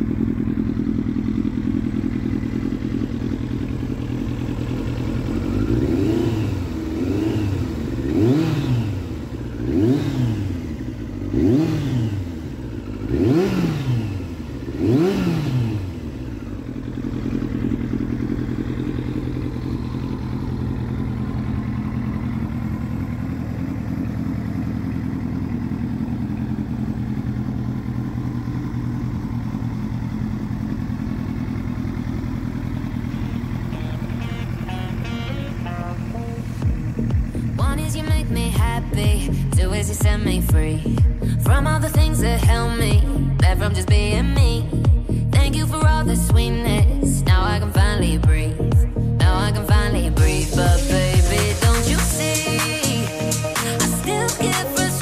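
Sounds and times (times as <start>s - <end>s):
motorcycle engine idling and revving: 0.0s - 55.0s.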